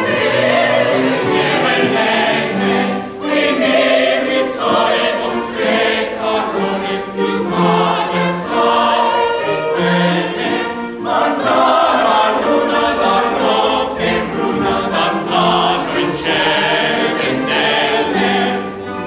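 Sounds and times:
mixed chorus singing: 0:00.0 - 0:19.0.

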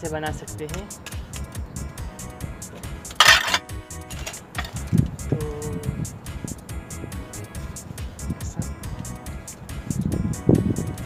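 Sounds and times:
background music with beat: 0:00.0 - 0:11.0
glass panel scraping clatter: 0:03.2 - 0:04.9.

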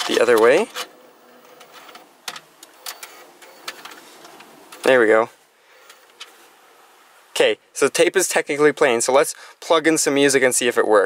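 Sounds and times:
faint tape mechanism hum: 0:00.0 - 0:09.8.

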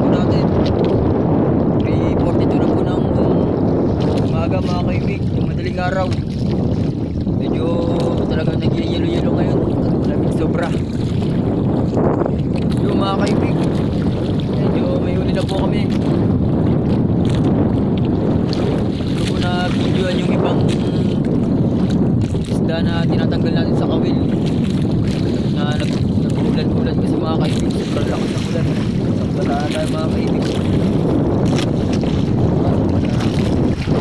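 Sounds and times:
boat engine running: 0:00.0 - 0:34.0
wind buffeting microphone: 0:00.0 - 0:34.0.

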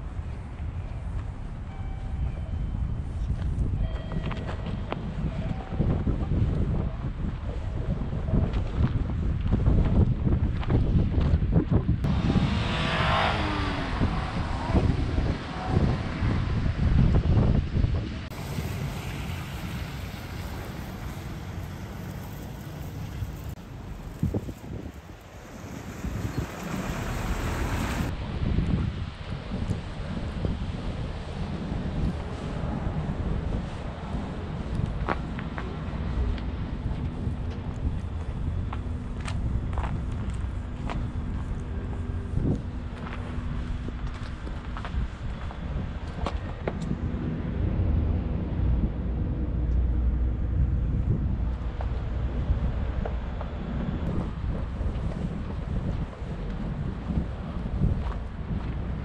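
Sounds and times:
wind buffeting microphone: 0:00.0 - 0:59.0
road traffic passing: 0:12.0 - 0:59.0.

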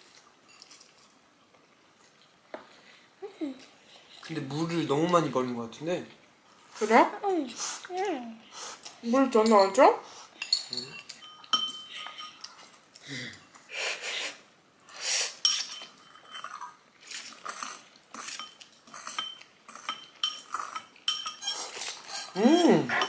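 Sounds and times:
utensils clinking on ceramic bowls: 0:09.2 - 0:13.7, 0:15.4 - 0:23.0.

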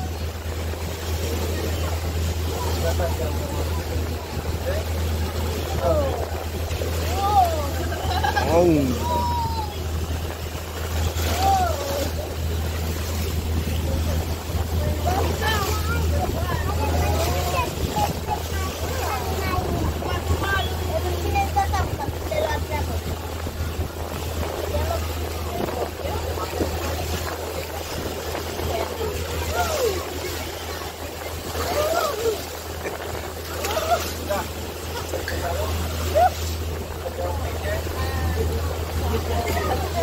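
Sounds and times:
motorboat engine rumble: 0:00.0 - 0:40.0
people's voices: 0:00.0 - 0:40.0
rushing boat wake: 0:00.0 - 0:40.0.

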